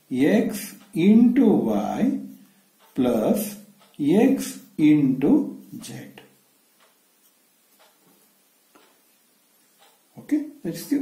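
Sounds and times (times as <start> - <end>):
faint ticks: 5.6 - 10.1.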